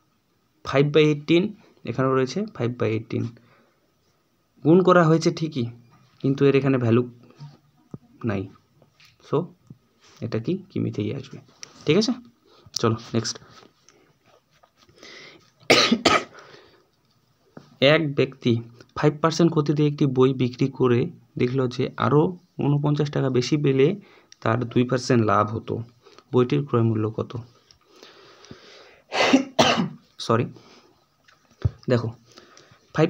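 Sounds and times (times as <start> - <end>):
man coughing: 15.7 - 16.4, 29.1 - 30.0.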